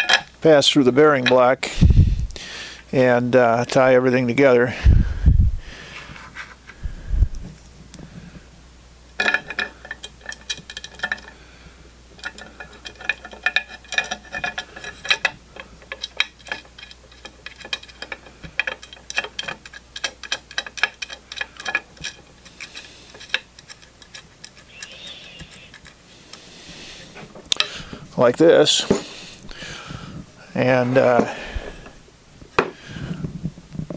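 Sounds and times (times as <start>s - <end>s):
low bumps of handled parts: 0.0s - 1.5s, 9.2s - 11.4s, 12.1s - 33.9s
metallic ticks of screws driven: 12.2s - 26.4s.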